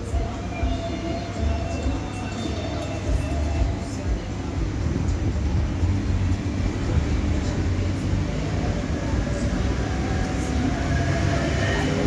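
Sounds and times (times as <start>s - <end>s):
indistinct background voices: 0.0s - 12.0s
steady low rumble: 3.6s - 11.1s.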